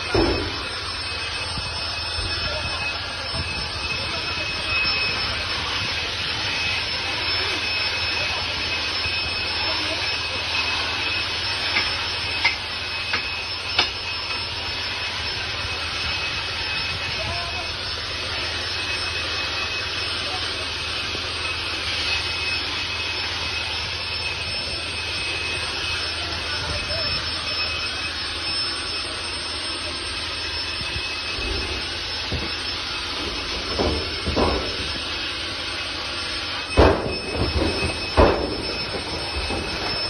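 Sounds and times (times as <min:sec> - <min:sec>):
thump: 0:00.2 - 0:00.6, 0:36.8 - 0:39.0.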